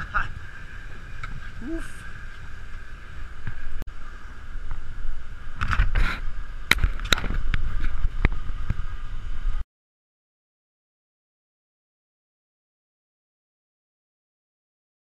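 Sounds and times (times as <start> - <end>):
boat engine humming: 0.0 - 9.6.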